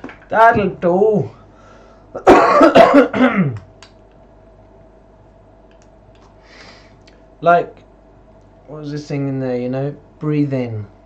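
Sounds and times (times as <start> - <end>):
man clearing his throat: 2.2 - 3.6.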